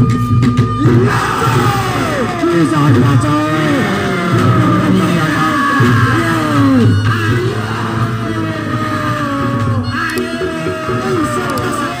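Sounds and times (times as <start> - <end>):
reedy wind instrument melody: 0.0 - 11.9
drums: 0.0 - 12.0.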